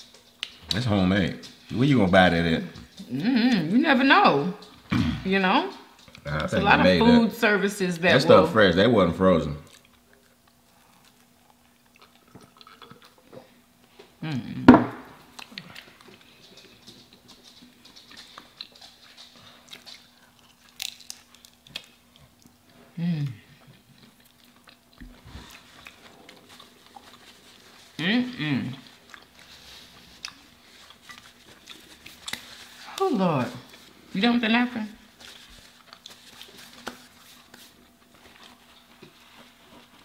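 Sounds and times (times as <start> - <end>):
chewing fried food: 0.0 - 3.3, 5.7 - 6.6, 9.4 - 14.2, 15.2 - 34.2, 35.0 - 40.0.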